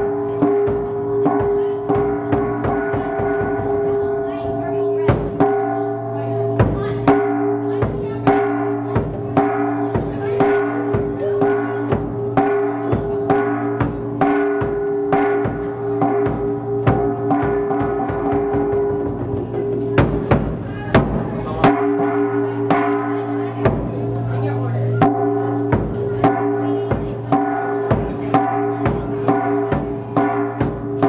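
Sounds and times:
gongs struck with mallets: 0.0 - 31.0.

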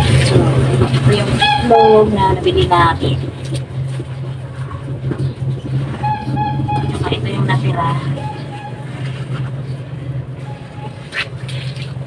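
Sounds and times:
low motor-like hum: 0.0 - 12.0
short high-pitched call: 8.2 - 9.0.

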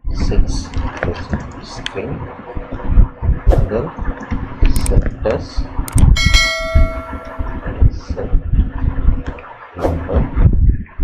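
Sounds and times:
bell chime: 6.2 - 7.7.

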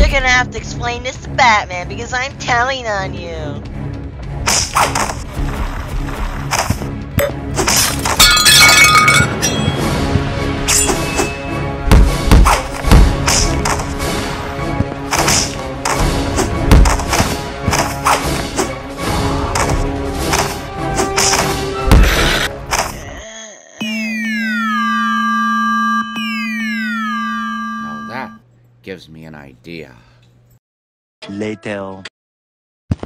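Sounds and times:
background music: 0.0 - 24.8
glass shattering: 7.8 - 9.8
falling electronic alarm tone: 23.8 - 28.4.

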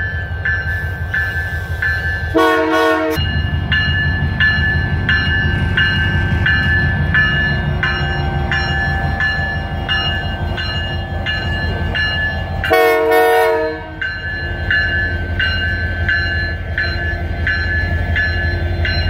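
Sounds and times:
diesel locomotive engine rumble: 0.0 - 19.0
locomotive bell ringing: 0.0 - 19.0
train horn: 2.3 - 3.3, 12.6 - 14.0.

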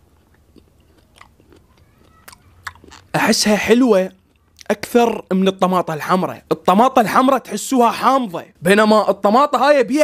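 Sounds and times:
close chewing: 0.0 - 3.1, 4.2 - 4.7
wet mouth clicks: 0.2 - 3.1.

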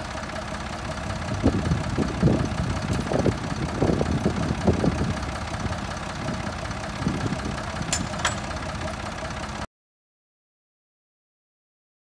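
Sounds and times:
tractor engine idling: 0.0 - 9.7.

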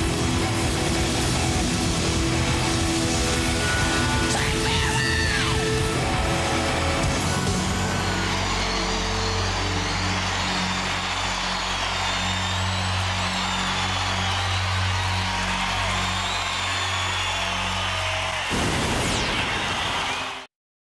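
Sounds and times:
rock band sustained chord: 0.0 - 17.1
crowd cheering with whistles: 0.0 - 20.5.

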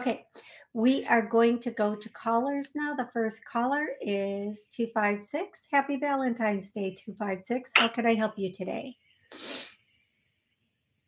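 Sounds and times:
sharp rush of breath: 9.3 - 9.8.

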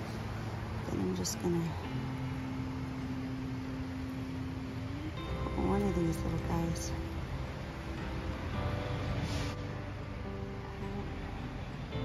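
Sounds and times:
faint hiss: 0.0 - 12.0
woman humming a steady note: 1.7 - 8.2, 10.4 - 11.6.

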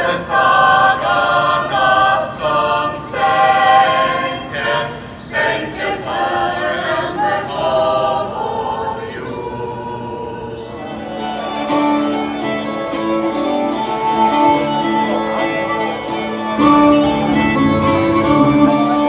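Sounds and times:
small choir singing in parts: 0.0 - 11.5.

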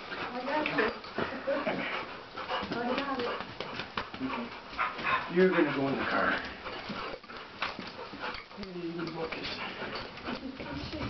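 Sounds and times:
rustling: 0.0 - 11.0
dog whimpering: 4.2 - 7.4.

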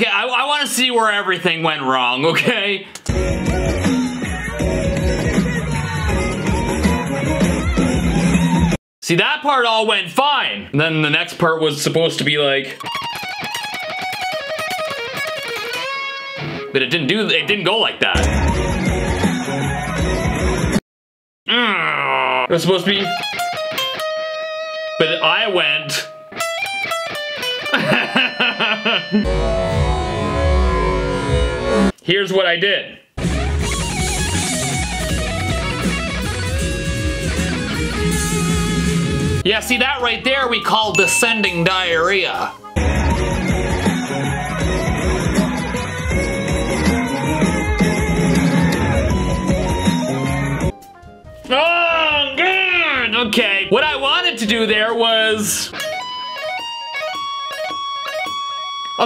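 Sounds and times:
band playing live: 3.1 - 8.8, 33.2 - 39.8, 40.6 - 51.5
heavy bass: 3.1 - 8.8, 18.2 - 20.8, 29.3 - 32.0, 33.2 - 39.7, 42.8 - 50.7
electric guitar tapped lick: 12.8 - 16.6, 55.7 - 59.0
electric guitar solo: 12.8 - 16.8, 23.0 - 31.8, 33.2 - 39.4, 55.6 - 59.0.

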